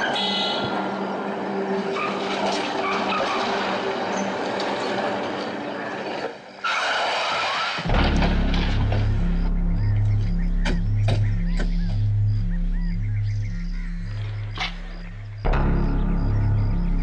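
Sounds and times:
tyre and road noise: 0.0s - 12.5s.

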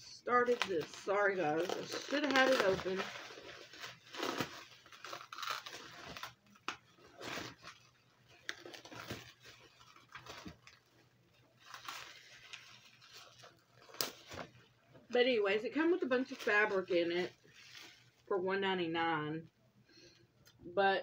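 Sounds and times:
plastic wrapping tearing and crinkling: 0.2s - 14.8s, 15.7s - 18.3s.

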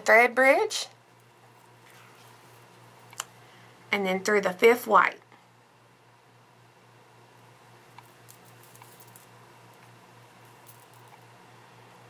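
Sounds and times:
steady low hum: 0.0s - 12.0s
light clicks of beads: 7.9s - 11.3s.

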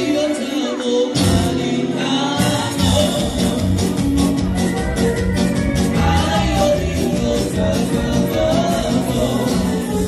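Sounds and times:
man singing into a microphone: 0.0s - 4.0s, 5.8s - 10.0s
electric guitar: 0.0s - 10.0s
deep bass notes: 2.4s - 10.0s.

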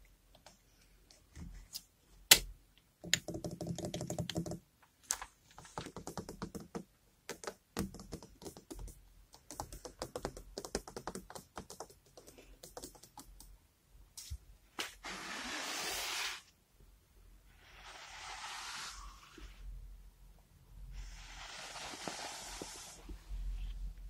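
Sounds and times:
fingers tapping on hard objects: 3.0s - 4.6s, 5.8s - 13.5s.

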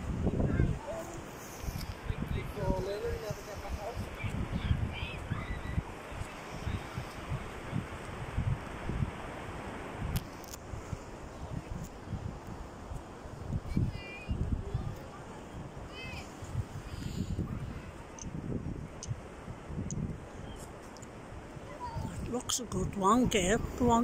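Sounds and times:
wind buffeting microphone: 0.0s - 24.0s
steady hiss: 0.8s - 4.4s.

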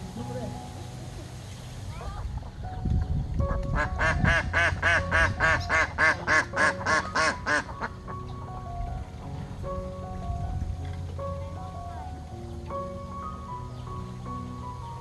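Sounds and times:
background music with held notes: 0.0s - 15.0s
ducks quacking: 3.5s - 8.3s.

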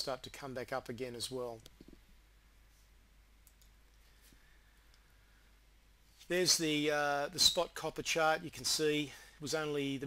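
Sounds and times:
faint computer mouse clicks: 3.4s - 4.0s.

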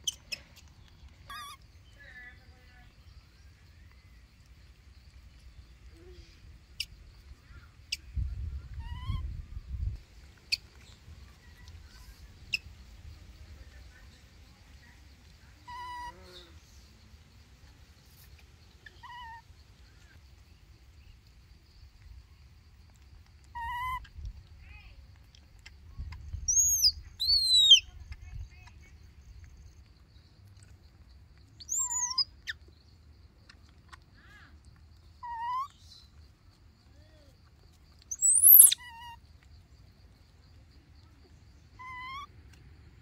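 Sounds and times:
baby macaque calls: 1.3s - 1.6s, 8.7s - 9.3s, 15.7s - 16.5s, 18.8s - 19.4s, 23.5s - 24.1s, 26.5s - 27.9s, 31.6s - 32.6s, 35.2s - 35.9s, 38.1s - 39.2s, 41.7s - 42.3s.

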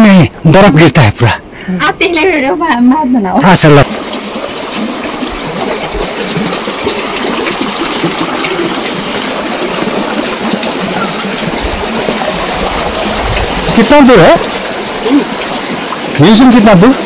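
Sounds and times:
stream water rushing: 3.4s - 17.0s.

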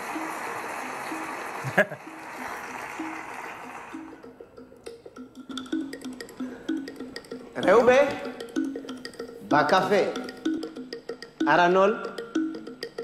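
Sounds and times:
audience applause: 0.0s - 4.2s
music with short repeated notes: 0.0s - 13.0s.

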